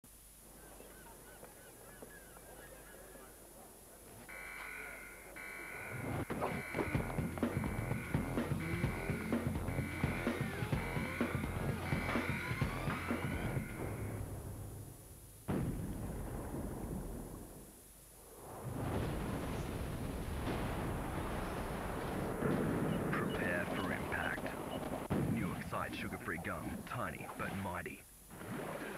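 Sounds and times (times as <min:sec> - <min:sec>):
birds calling faintly: 0:00.4 - 0:14.2, 0:22.6 - 0:27.8
steady high tone: 0:04.3 - 0:14.4
deep boom impact: 0:06.3 - 0:17.5
voiceover speaking: 0:23.1 - 0:24.6, 0:25.4 - 0:28.1.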